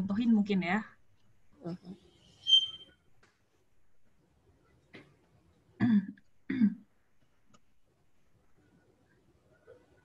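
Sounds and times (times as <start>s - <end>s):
person coughing: 5.8s - 6.8s.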